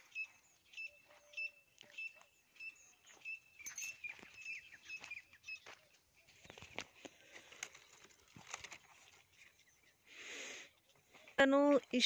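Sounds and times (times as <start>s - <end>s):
high bird chirps: 0.0s - 6.7s.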